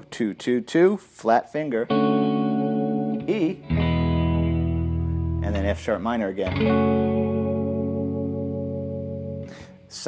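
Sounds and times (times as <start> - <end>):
electric guitar chord ringing: 1.8 - 9.8.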